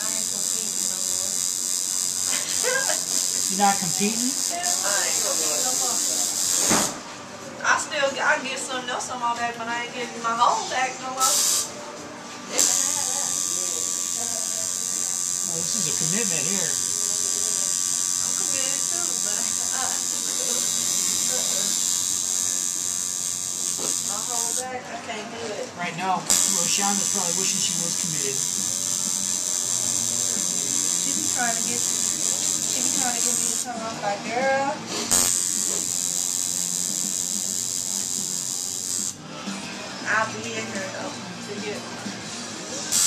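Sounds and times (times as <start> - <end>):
tattoo machine buzzing: 0.0 - 7.0, 11.1 - 11.7, 12.5 - 24.7, 26.0 - 41.0, 42.7 - 43.0.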